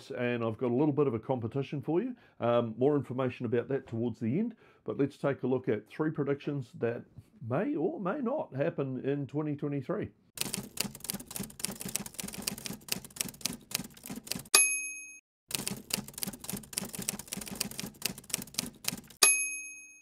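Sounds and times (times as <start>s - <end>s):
typewriter keys striking: 10.4s - 14.5s, 15.5s - 19.2s
typewriter bell ding: 14.5s - 15.2s, 19.2s - 20.0s.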